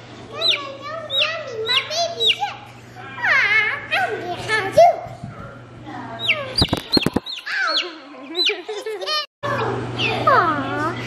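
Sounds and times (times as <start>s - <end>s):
baby chick peeping: 0.3s - 3.3s, 6.2s - 9.2s.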